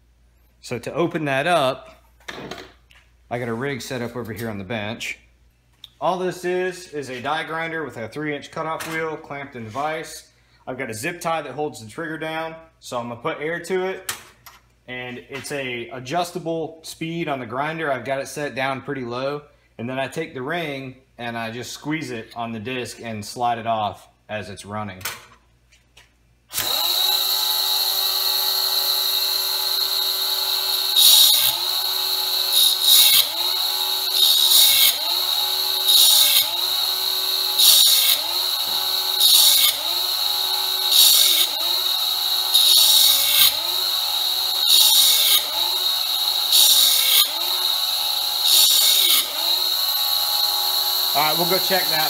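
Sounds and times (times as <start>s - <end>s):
air die grinder running: 26.6s - 52.0s
grinding rasp of metal ring: 26.8s - 52.0s.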